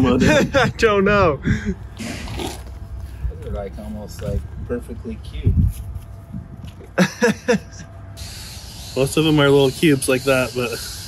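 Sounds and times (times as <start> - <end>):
bursts of laughter: 6.9 - 7.9
steady high hiss: 8.2 - 11.0.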